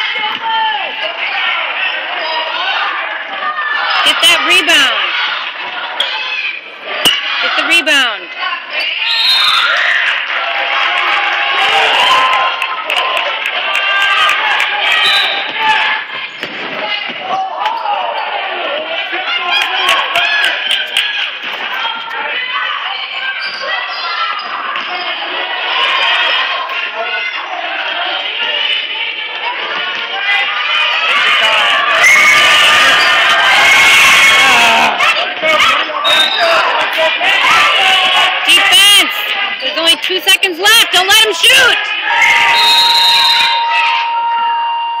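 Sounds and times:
indistinct voices: 0.0s - 45.0s.

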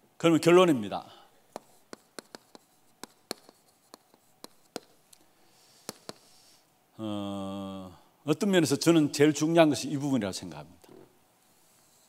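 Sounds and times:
chalk scratching on chalkboard: 1.5s - 5.0s, 5.6s - 6.6s, 11.6s - 12.0s.

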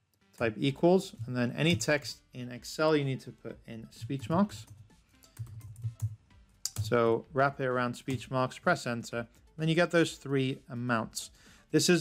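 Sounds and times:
computer keyboard typing: 4.1s - 7.0s.

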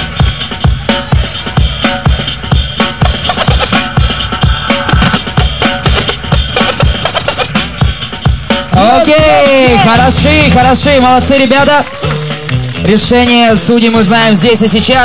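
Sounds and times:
hip-hop breakbeat drums: 0.0s - 11.3s
turntable scratching: 1.1s - 8.1s.

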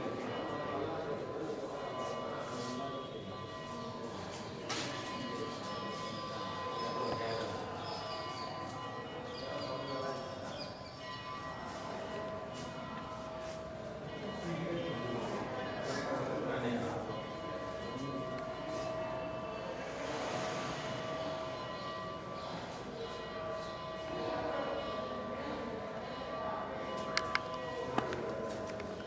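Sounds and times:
background hubbub: 0.0s - 29.0s
bells ringing: 0.0s - 29.0s.

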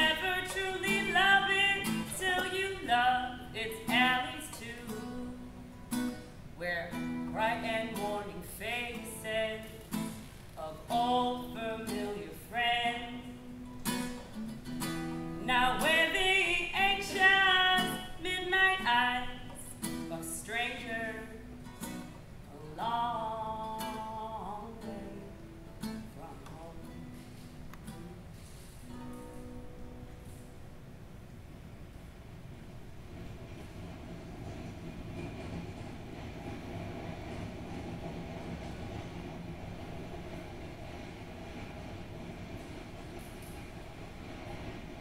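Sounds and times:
woman singing: 0.0s - 5.4s, 6.6s - 10.0s, 10.6s - 13.4s, 15.4s - 21.5s, 22.5s - 27.2s
acoustic guitar: 0.0s - 45.0s.

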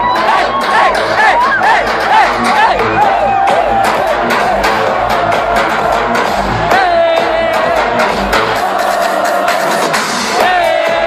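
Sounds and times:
kick drum beat: 0.0s - 9.0s
electronic dance music: 0.0s - 11.0s.

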